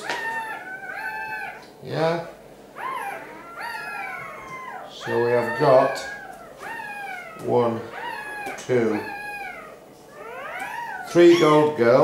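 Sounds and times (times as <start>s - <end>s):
puppies squealing: 0.0s - 12.0s.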